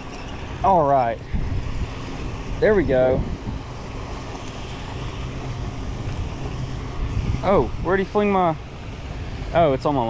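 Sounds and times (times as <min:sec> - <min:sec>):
low wind-like rumble: 0:00.0 - 0:10.0.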